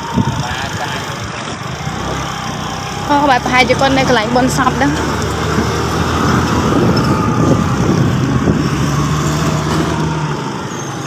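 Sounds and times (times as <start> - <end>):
road and wind noise: 0.0 - 11.0.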